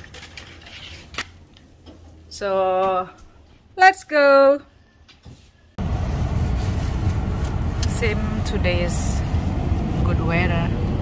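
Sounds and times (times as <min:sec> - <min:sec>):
truck cabin road rumble: 0:05.8 - 0:11.0.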